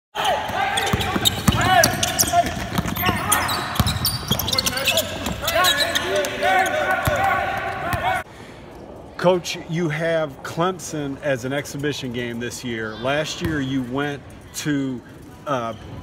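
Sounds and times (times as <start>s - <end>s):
sneakers squeaking: 0.2s - 8.2s, 12.7s - 16.0s
players calling out: 0.2s - 8.3s
basketball bouncing: 0.4s - 6.0s, 6.9s - 8.1s.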